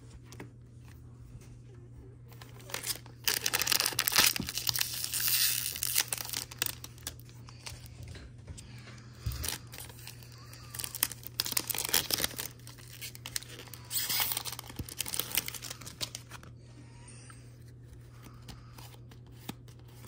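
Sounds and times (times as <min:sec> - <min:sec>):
wrapper tearing and crinkling: 0:02.6 - 0:07.3, 0:09.4 - 0:16.4.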